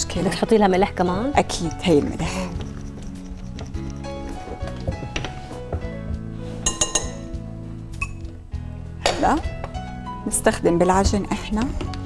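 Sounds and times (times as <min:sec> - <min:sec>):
background music: 0:00.0 - 0:12.0
metal spoon clinking on glass: 0:06.7 - 0:07.3.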